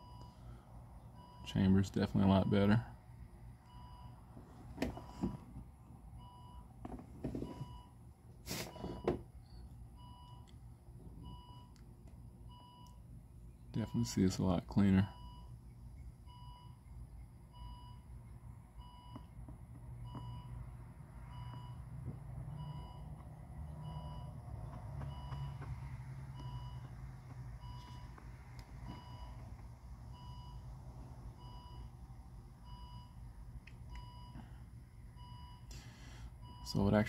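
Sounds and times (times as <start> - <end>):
low steady rumble: 0.0 - 8.4, 9.2 - 37.0
faint electronic beeps: 12.5 - 26.9.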